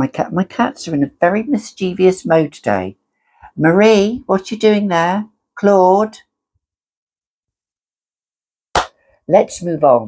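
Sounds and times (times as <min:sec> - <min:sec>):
hand clap: 0:08.7 - 0:09.0.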